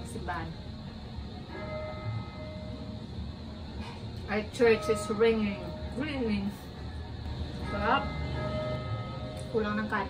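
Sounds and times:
faint church bells ringing: 0:01.4 - 0:10.0.

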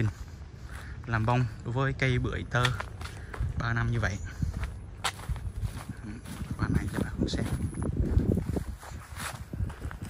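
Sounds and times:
footsteps on dry soil: 0:00.0 - 0:10.0.

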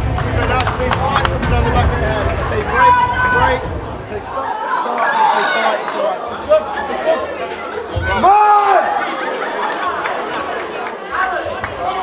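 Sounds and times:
chatter of voices in a hall: 0:00.0 - 0:12.0.

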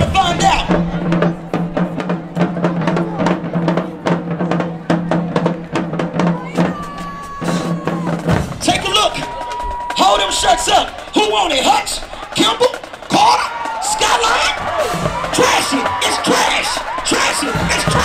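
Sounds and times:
marching drumline playing: 0:00.0 - 0:18.0
voices: 0:00.0 - 0:18.0.

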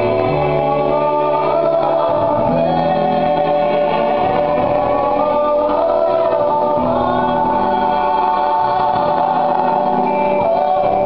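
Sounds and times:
stage musical singing: 0:00.0 - 0:11.0.

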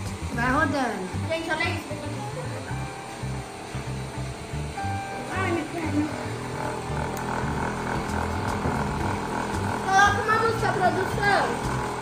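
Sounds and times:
cotton candy machine whirring: 0:00.0 - 0:12.0.

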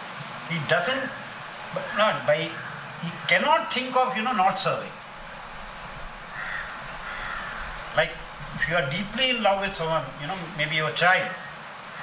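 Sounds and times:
bird calling: 0:01.0 - 0:03.4, 0:04.4 - 0:12.0.

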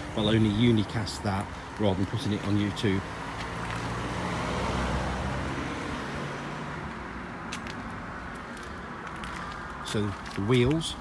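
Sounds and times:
car passing: 0:00.0 - 0:10.4.

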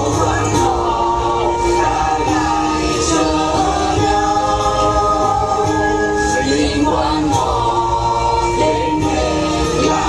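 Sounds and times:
group singing folk song: 0:00.0 - 0:10.0.

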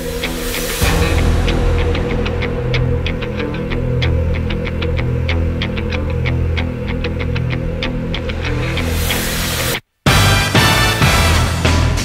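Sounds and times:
rising swell of noise: 0:00.0 - 0:09.8.

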